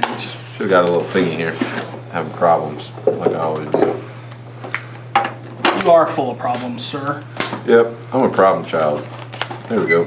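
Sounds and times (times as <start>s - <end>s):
man speaking: 9.7s - 10.0s.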